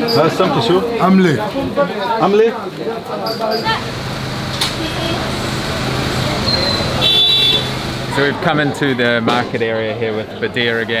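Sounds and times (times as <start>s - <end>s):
traffic noise: 0.0s - 11.0s
voices: 0.0s - 11.0s.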